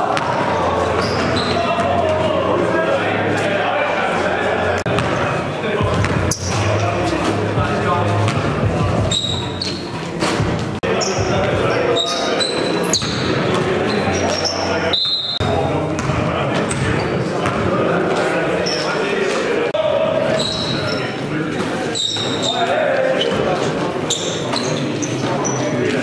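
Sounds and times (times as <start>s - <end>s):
players' voices: 0.0s - 26.0s
basketball bouncing on wooden court: 0.2s - 0.4s, 4.9s - 5.2s, 13.0s - 13.7s, 16.0s - 17.7s.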